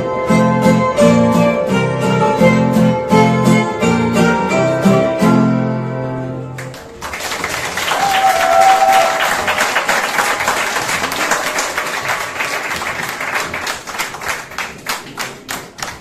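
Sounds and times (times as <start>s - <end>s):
audience applause: 6.6s - 16.0s.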